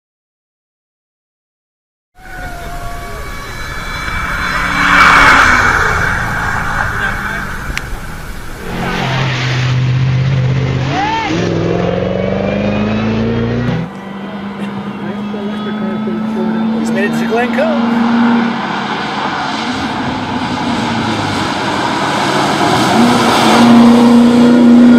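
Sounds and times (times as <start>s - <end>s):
race car engine running hard: 2.3s - 24.9s
spectators' voices: 13.9s - 17.9s.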